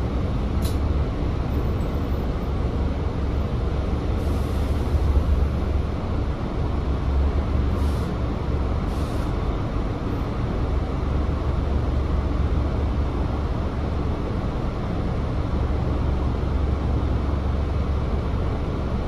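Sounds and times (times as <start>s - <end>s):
bus engine idling: 0.0s - 19.0s.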